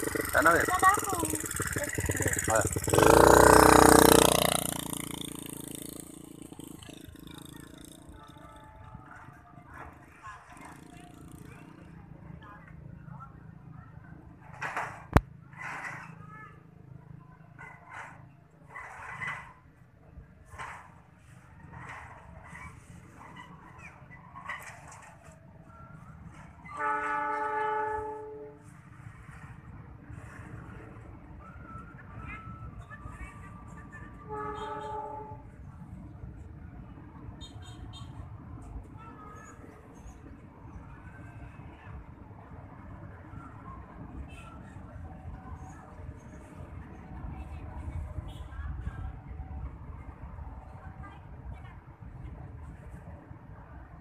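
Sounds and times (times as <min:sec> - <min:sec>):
dirt bike engine revving: 0:00.0 - 0:08.0.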